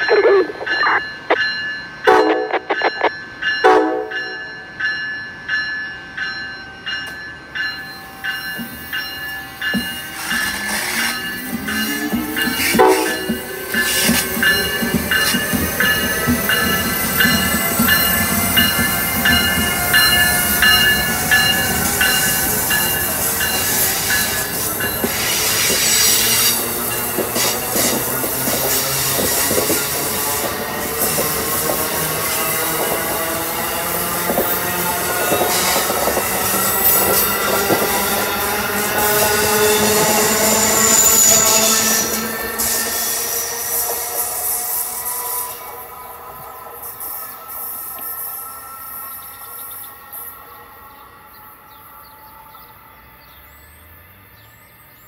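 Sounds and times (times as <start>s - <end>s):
rail and wheel noise: 0.0s - 55.0s
train horn blasts: 3.6s - 4.3s, 12.6s - 14.0s, 32.0s - 48.8s.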